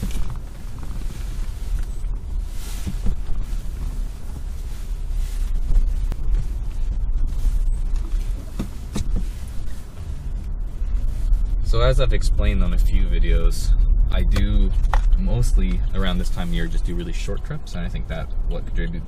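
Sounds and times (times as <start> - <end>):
car cabin rumble: 0.0 - 19.0.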